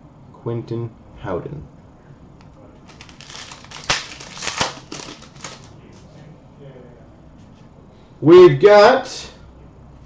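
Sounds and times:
trading cards flicked by hand: 2.9 - 5.7.

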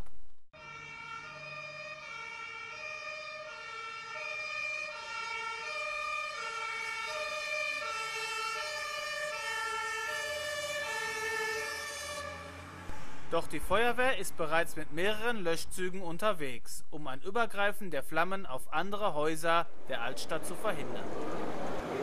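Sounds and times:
two-tone emergency siren: 0.6 - 13.3.

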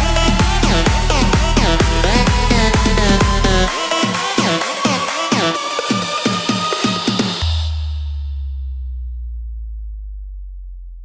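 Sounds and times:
deep steady bass tone: 0.0 - 3.8, 7.4 - 11.0
electronic dance music: 0.0 - 8.3.

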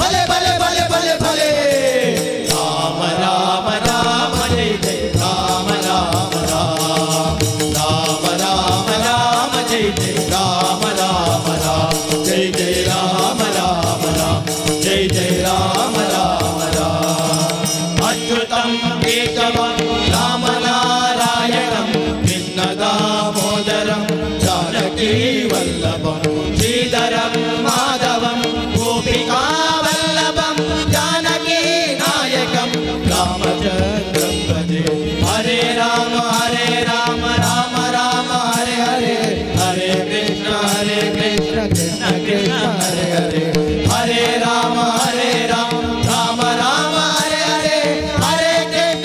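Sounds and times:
harmonium: 0.0 - 49.0
men singing devotional chant: 0.0 - 49.0
percussion strokes: 0.0 - 49.0
tabla: 0.0 - 49.0.

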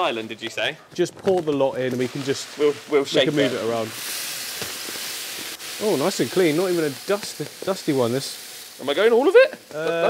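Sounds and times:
gravel pouring onto glass: 1.8 - 9.4.

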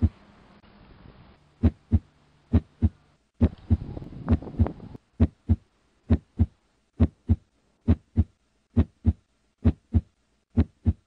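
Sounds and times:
heartbeat: 1.6 - 11.0.

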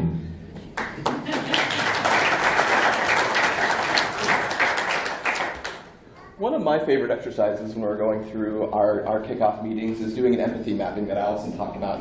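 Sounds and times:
audience applauding: 0.7 - 6.0.

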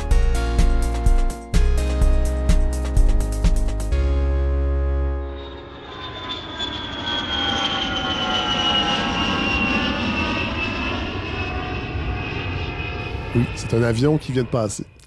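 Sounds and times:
airplane engine passing overhead: 5.0 - 15.0.

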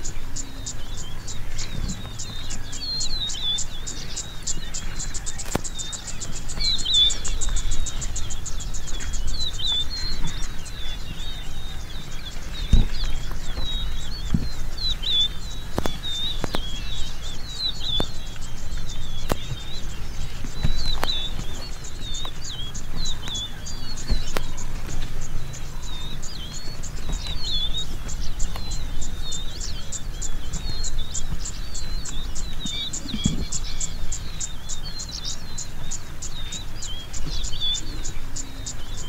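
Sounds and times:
birds warbling chirps: 0.0 - 39.0
low steady rumble: 0.0 - 39.0.

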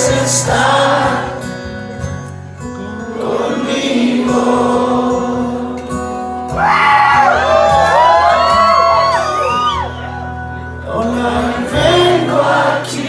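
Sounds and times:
audience singing and whooping: 0.0 - 1.6, 3.2 - 13.0.

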